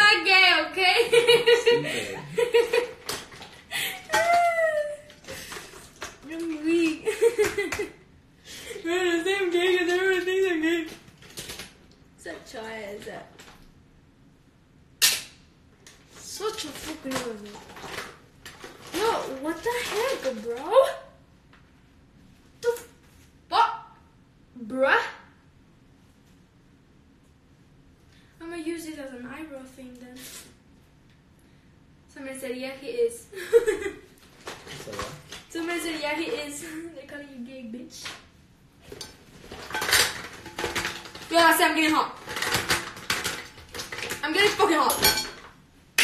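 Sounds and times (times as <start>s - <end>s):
small objects clicking and clattering: 42.2s - 45.0s.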